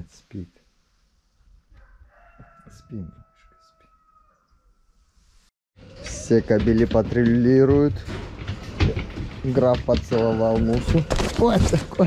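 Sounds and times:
rooster crowing: 0:01.7 - 0:04.7.

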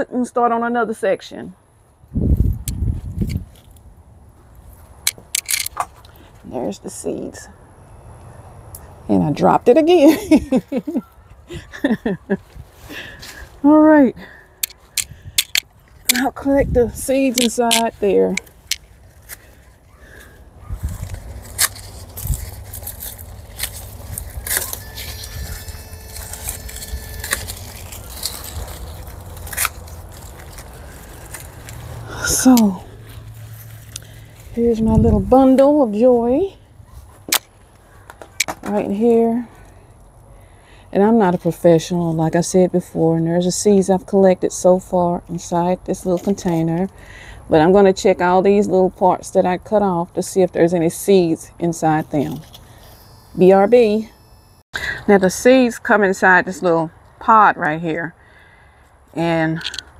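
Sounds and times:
dry seed heads crackling: 0:04.6 - 0:06.8, 0:12.4 - 0:40.2
garden scissors snipping stalks: 0:14.6 - 0:35.7.

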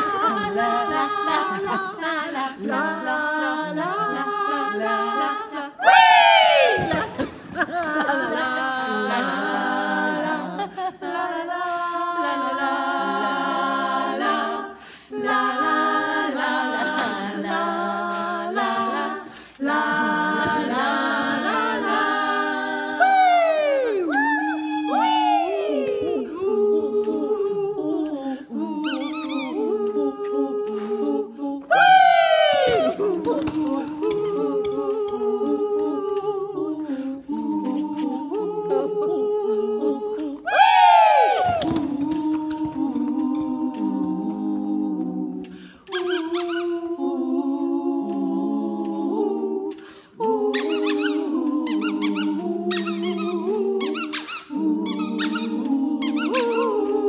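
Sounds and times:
women singing a cappella harmony: 0:00.0 - 0:57.0
women humming a tune: 0:22.9 - 0:44.0
high squeaky trill: 0:28.8 - 0:29.7, 0:45.9 - 0:46.8, 0:50.6 - 0:56.8.

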